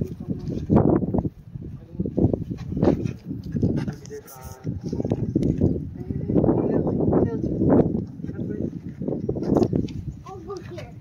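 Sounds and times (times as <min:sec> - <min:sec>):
young children talking: 0:10.2 - 0:11.0.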